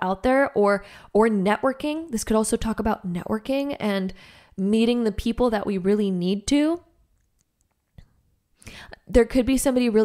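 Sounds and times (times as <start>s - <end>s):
woman speaking: 0.0s - 7.0s, 8.9s - 10.0s
breathy in-breath: 0.8s - 1.1s, 4.2s - 4.6s, 8.6s - 9.0s.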